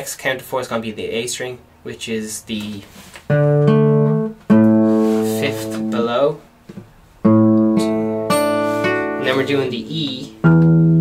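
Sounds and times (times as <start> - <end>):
fingerstyle acoustic guitar: 3.0 - 6.1, 7.2 - 11.0.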